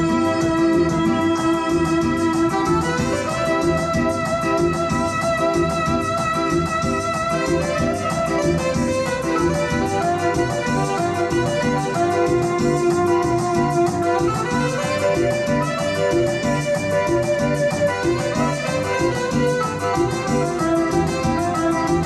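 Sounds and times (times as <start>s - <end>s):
dance band instrumental: 0.0s - 22.0s
organ-like keyboard melody: 0.0s - 22.0s.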